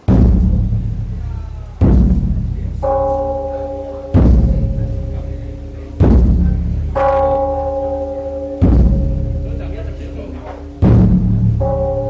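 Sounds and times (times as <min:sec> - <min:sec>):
large drum booming: 0:00.0 - 0:12.0
bell ringing: 0:02.6 - 0:10.9, 0:11.5 - 0:12.0.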